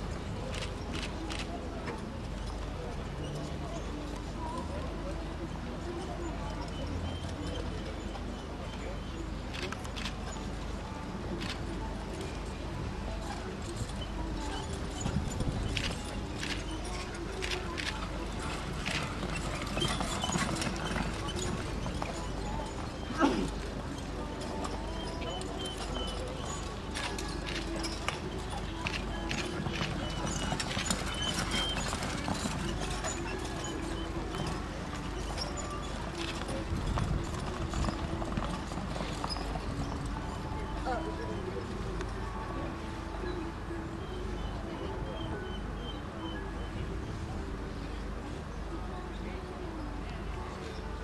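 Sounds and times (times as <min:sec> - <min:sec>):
hoofbeats trotting on sand: 0:11.4 - 0:42.2.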